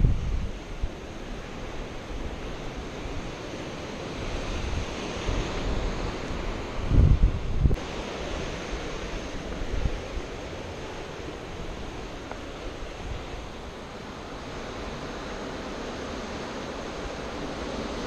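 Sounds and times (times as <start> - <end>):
sea surf over rocks: 0.0 - 18.0
wind buffeting microphone: 0.0 - 18.0.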